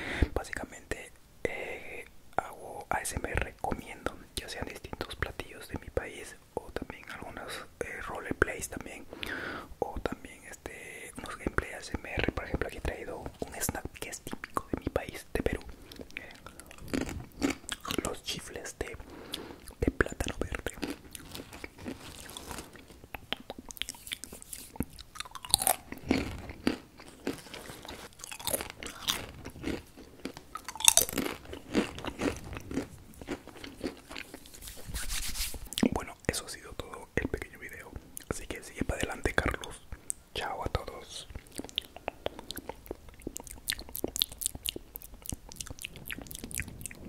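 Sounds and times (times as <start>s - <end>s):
wet mouth sounds: 13.2s - 37.6s, 41.2s - 47.0s
crisp chips crunching: 16.4s - 18.2s, 20.2s - 23.0s, 23.6s - 34.9s
person speaking: 17.8s - 19.1s, 19.7s - 25.0s, 34.6s - 41.3s.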